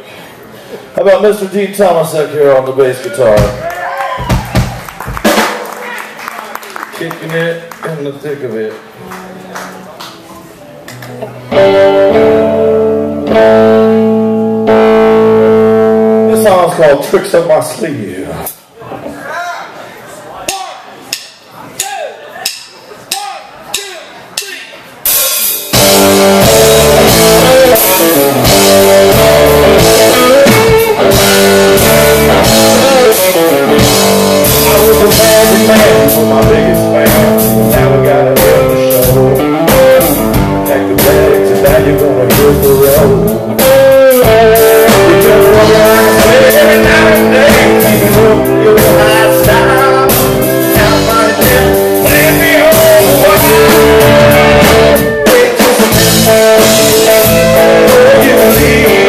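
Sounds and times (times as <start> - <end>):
drum kit: 3.3 - 5.9, 20.5 - 59.0
electric guitars: 8.9 - 16.8, 25.4 - 59.0
bass guitar: 9.1 - 17.0, 25.0 - 59.0.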